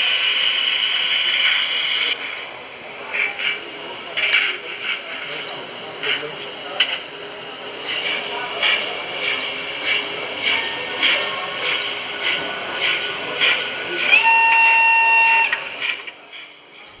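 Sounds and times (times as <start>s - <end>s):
model steam locomotive chuffing: 0.0s - 17.0s
steam whistle: 14.0s - 15.8s.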